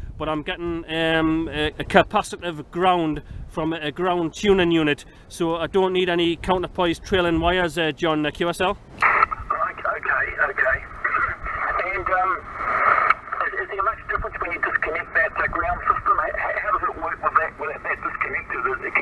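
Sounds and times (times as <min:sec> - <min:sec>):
radio static: 0:09.0 - 0:19.0
radio voice with echo: 0:09.0 - 0:19.0.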